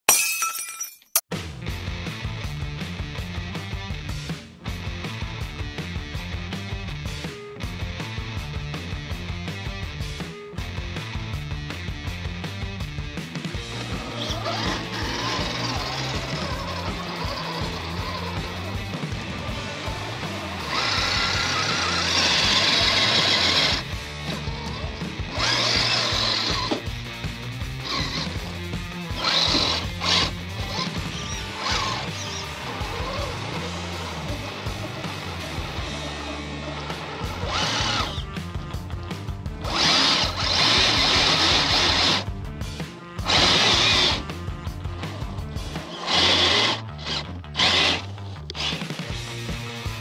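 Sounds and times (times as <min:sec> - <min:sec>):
background music: 0:01.3 - 0:50.0
electric motor and gears whining: 0:13.6 - 0:49.6.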